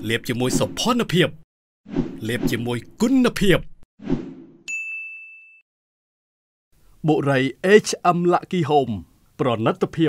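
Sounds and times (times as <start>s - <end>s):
bright ding: 4.7s - 5.6s.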